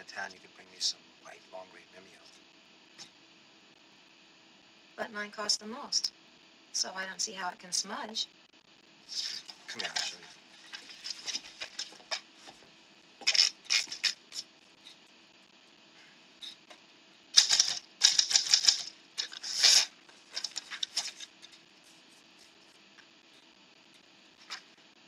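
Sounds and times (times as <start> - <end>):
typewriter keys clacking: 13.2 - 14.2, 17.4 - 21.3.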